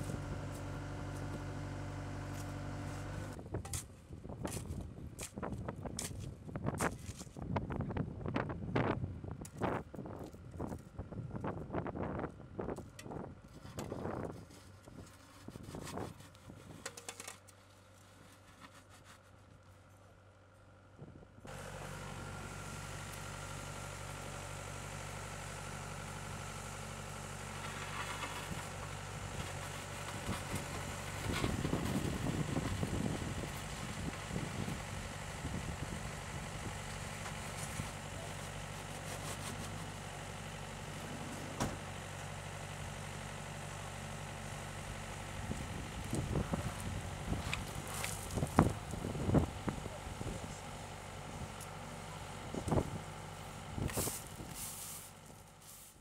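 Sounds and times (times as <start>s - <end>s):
diesel engine idling: 0.0s - 3.4s, 21.5s - 56.0s
sharp knocks and scrapes: 13.5s - 19.4s, 37.2s - 39.9s.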